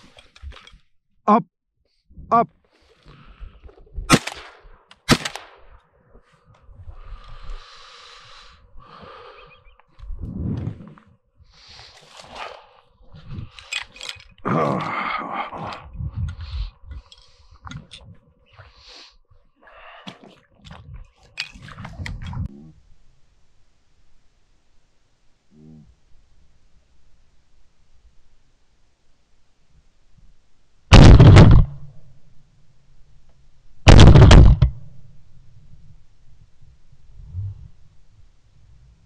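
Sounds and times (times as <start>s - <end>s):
shotgun action cycling: 4.1s - 5.6s
shotgun shots: 4.1s - 5.7s, 30.9s - 31.9s, 33.9s - 34.8s.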